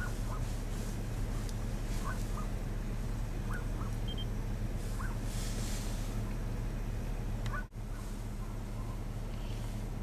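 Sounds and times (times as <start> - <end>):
engine idling hum: 0.0 - 10.0.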